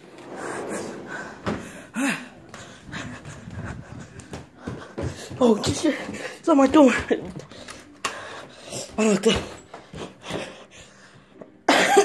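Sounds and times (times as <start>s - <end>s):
person coughing harshly: 11.7s - 12.0s.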